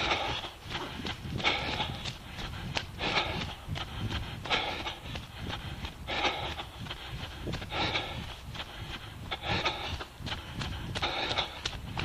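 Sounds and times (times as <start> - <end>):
runner breathing hard: 0.0 - 12.0
running footfalls: 0.0 - 12.0.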